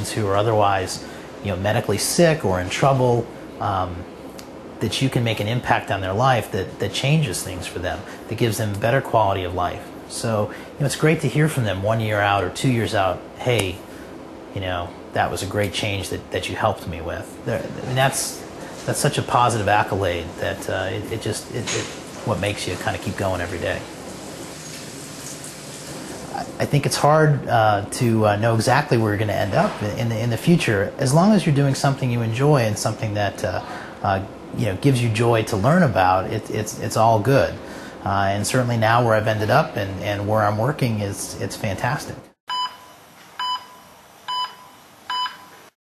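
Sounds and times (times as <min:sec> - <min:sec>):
heart monitor beeps: 0:42.5 - 0:45.7.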